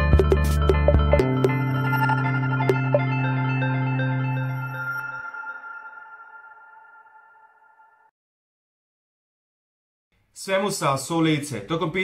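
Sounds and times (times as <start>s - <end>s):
held musical tones ringing: 0.9s - 8.1s.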